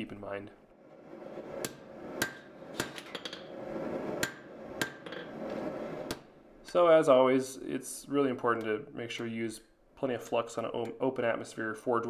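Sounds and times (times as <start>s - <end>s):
hammer striking steel on anvil: 1.6s - 3.5s, 4.2s - 5.3s.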